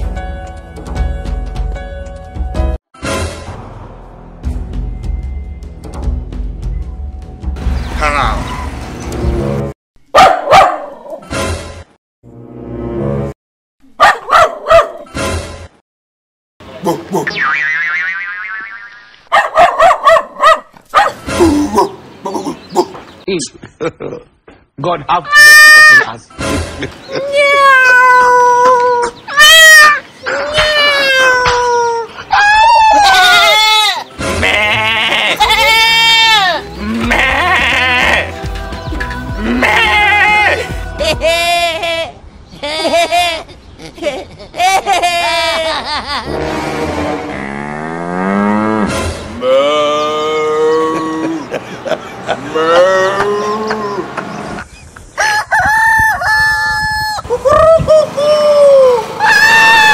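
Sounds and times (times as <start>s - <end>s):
goat bleating: 33.0s - 38.4s, 39.4s - 43.5s
music with a beat: 38.1s - 39.6s
man imitating rooster crowing: 49.4s - 51.5s, 52.4s - 54.2s, 55.2s - 59.9s.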